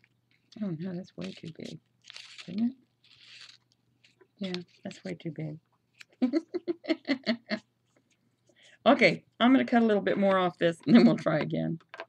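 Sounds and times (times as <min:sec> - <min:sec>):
woman laughing: 0:06.2 - 0:07.6.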